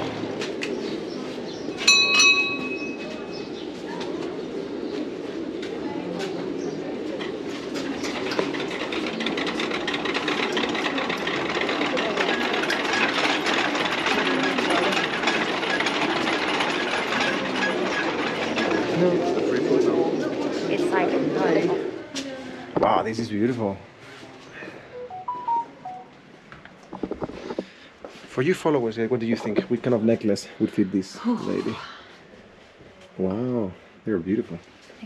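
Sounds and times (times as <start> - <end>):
bell ringing: 1.8 - 3.1, 25.0 - 26.1
clatter of prayer wheels rotating: 1.8 - 3.1, 7.1 - 21.8
crowd murmuring: 2.6 - 22.9.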